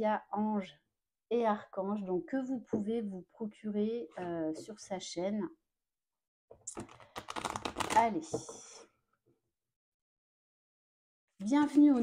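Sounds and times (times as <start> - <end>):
cards being shuffled: 6.7 - 8.1.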